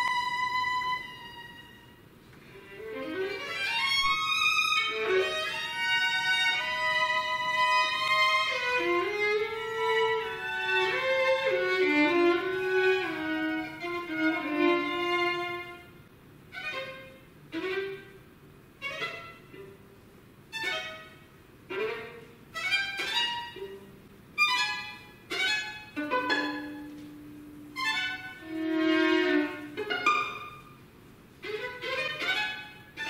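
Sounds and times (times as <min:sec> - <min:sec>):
solo violin: 0:00.0 - 0:33.0.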